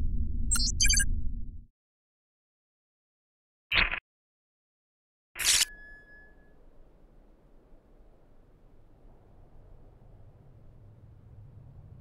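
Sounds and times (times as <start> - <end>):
thin ringing tone: 5.4 - 6.8.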